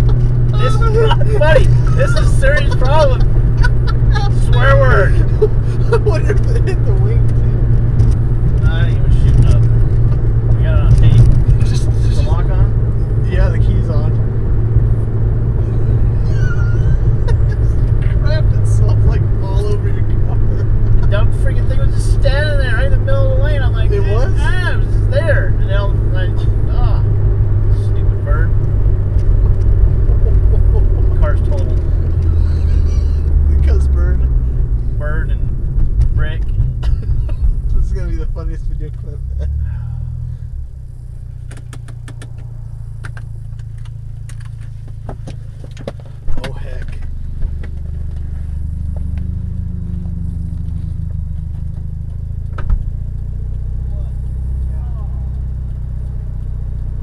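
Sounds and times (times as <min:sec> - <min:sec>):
car engine and road hum: 0:00.0 - 0:57.0.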